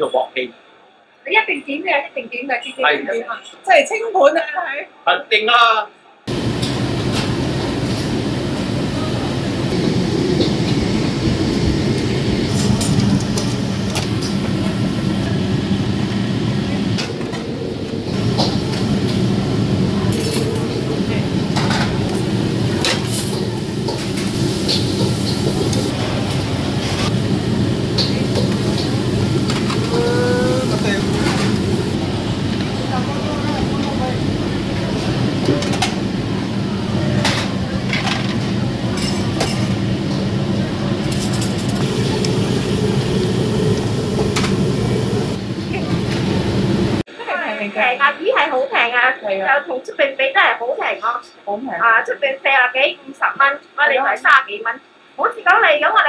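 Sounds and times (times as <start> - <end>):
roar of steamers and extractor hood: 6.3 - 47.1.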